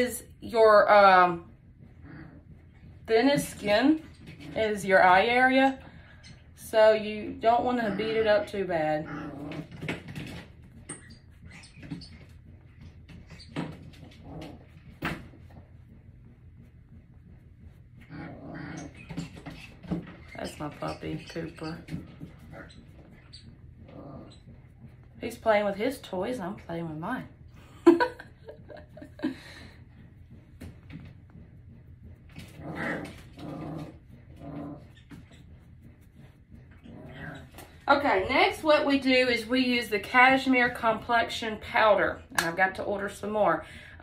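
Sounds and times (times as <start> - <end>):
puppy whining: 18.0 - 25.0.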